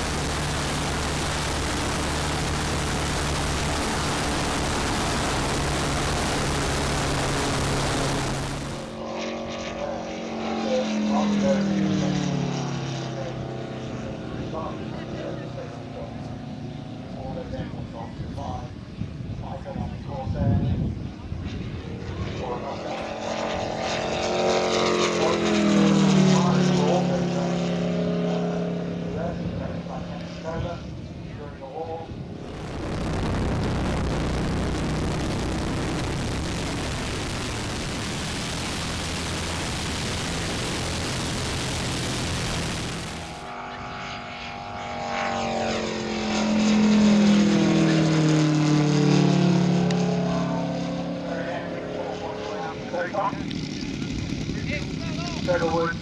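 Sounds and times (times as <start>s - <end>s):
model plane flying past: 0.0s - 56.0s
wind rush: 32.1s - 43.5s.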